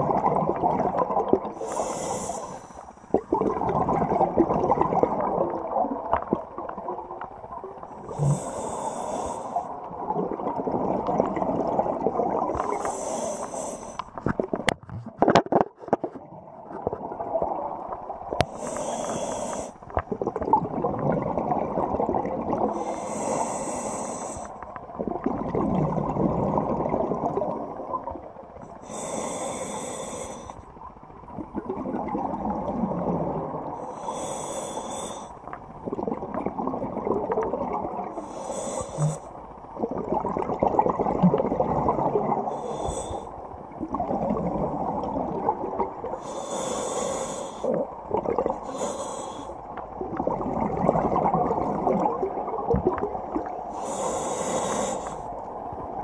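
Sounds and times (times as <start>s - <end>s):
bubbling exhaled air: 0.0s - 7.0s, 8.0s - 14.7s, 16.5s - 30.7s, 31.4s - 55.3s
regulator inhalation hiss: 1.6s - 3.0s, 8.3s - 9.6s, 12.8s - 14.0s, 18.5s - 19.8s, 22.8s - 24.5s, 28.8s - 30.6s, 33.9s - 35.4s, 38.2s - 39.2s, 42.5s - 43.3s, 46.2s - 47.8s, 48.7s - 49.5s, 53.8s - 55.3s.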